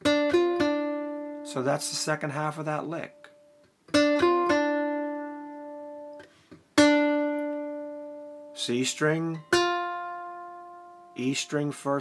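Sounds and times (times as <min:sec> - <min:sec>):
ukulele plucked notes: 0:00.0 - 0:11.4.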